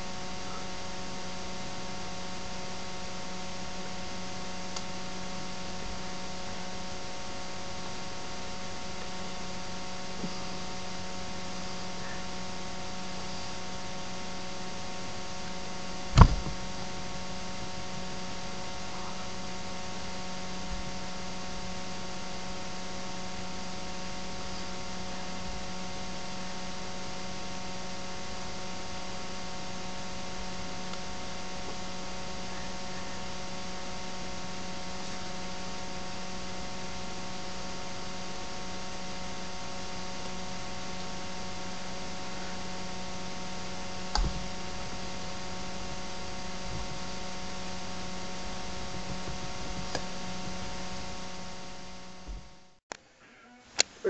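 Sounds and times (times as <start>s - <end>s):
electrical mains hum: 0.0s - 54.0s
sharp knock: 16.2s - 16.6s.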